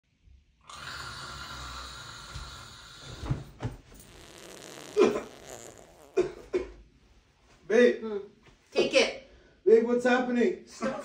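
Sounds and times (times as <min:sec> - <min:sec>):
background hiss: 0:00.6 - 0:11.0.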